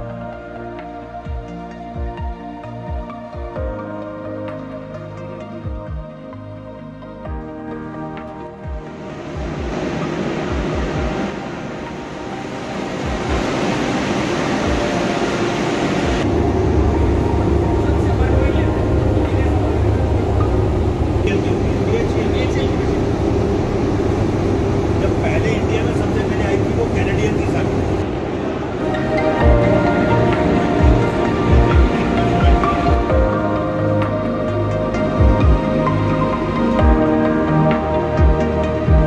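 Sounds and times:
deep hum: 6.8s - 39.0s
pump machinery noise: 9.0s - 28.8s.

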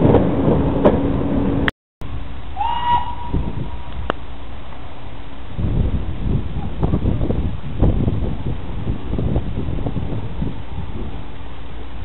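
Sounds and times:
background rumble: 0.0s - 12.0s
steam locomotive whistle: 2.5s - 3.8s.

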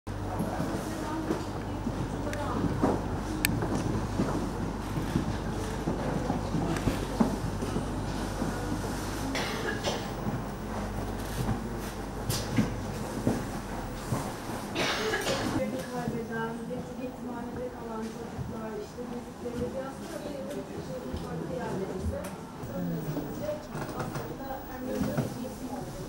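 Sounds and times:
people talking in background: 0.1s - 4.2s, 14.8s - 26.0s
steady low hum: 0.1s - 19.9s, 22.4s - 26.0s.

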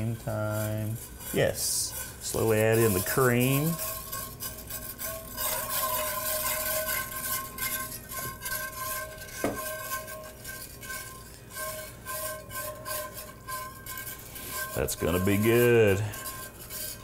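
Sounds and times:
cream pouring: 0.0s - 17.0s
whisk scraping a skillet: 0.0s - 17.0s.

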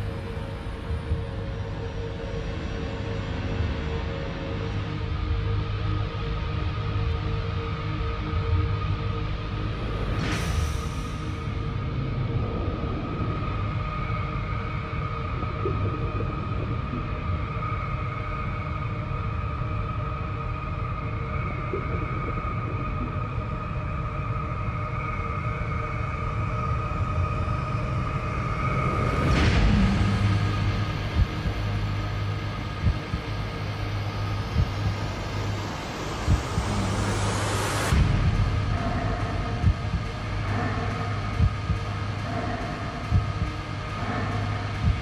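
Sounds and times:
low rumbling drone: 0.0s - 45.0s
steady hum: 8.2s - 45.0s
rising sweep: 28.7s - 38.7s
loud whoosh: 28.7s - 41.8s.

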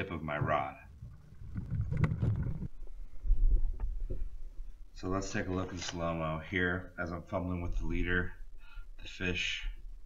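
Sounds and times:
wind buffeting microphone: 1.0s - 4.3s.

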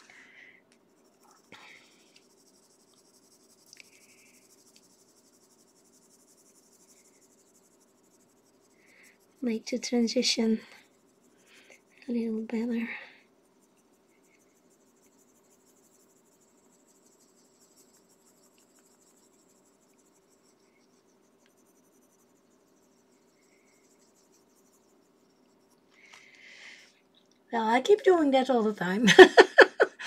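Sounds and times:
low steady hum: 0.0s - 30.0s
pencil scratching on paper: 0.9s - 25.9s.

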